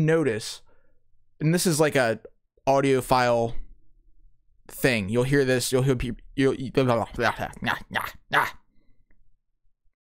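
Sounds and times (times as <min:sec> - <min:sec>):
man's harsh voice bursts: 0:06.9 - 0:08.6.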